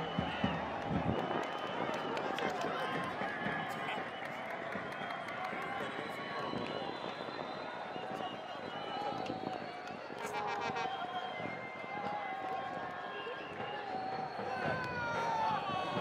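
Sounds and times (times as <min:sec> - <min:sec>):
stadium crowd shouting and chanting: 0:00.0 - 0:16.0.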